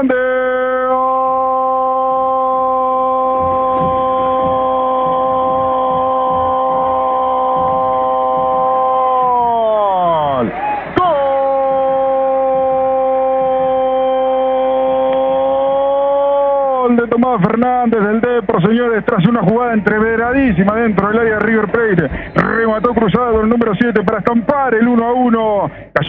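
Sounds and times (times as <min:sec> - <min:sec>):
commentator's drawn-out goal cry: 0:00.0 - 0:25.7.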